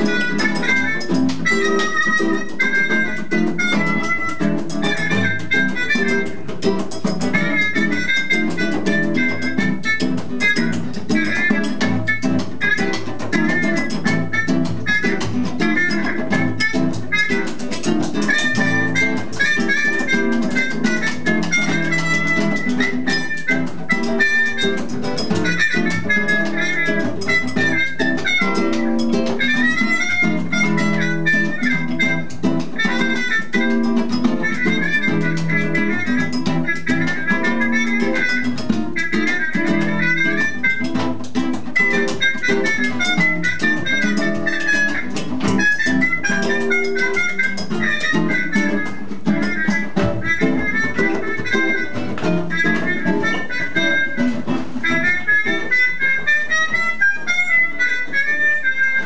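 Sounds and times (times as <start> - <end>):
harmonica melody: 0.0 - 59.0
strummed strings: 0.0 - 59.0.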